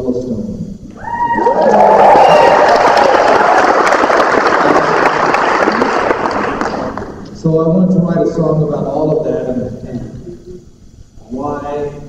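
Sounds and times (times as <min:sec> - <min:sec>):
person cheering: 0:01.0 - 0:03.7
audience clapping: 0:01.4 - 0:07.2.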